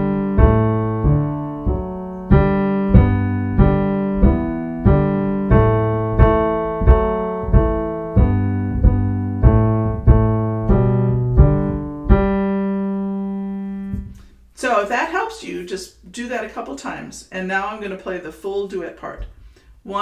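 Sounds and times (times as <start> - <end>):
piano playing melody: 0.0 - 14.3.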